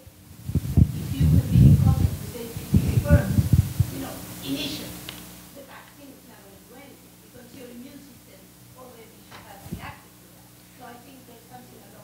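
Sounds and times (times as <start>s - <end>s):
low boomy thumps: 0.3s - 4.1s.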